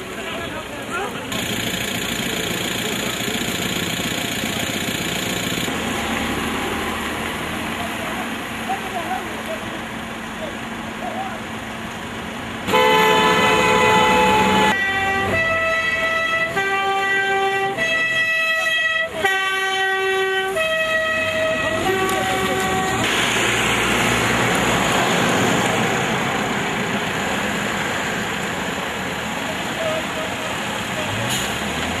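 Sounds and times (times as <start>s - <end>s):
idling traffic: 0.0s - 32.0s
road noise rushing: 0.0s - 32.0s
vehicle horn notes: 12.7s - 23.1s.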